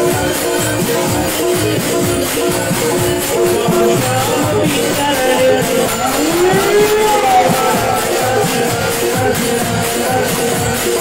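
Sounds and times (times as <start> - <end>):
person singing long sliding note: 2.7 - 10.5.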